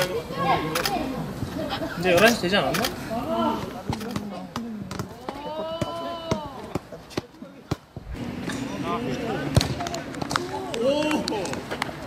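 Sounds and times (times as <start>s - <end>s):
people's voices: 0.0s - 12.0s
football kicked and bouncing: 3.6s - 8.1s, 9.5s - 11.2s.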